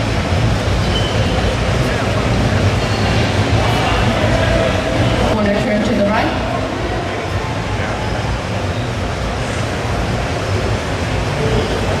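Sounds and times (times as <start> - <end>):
auditorium background rumble and hiss: 0.0 - 12.0.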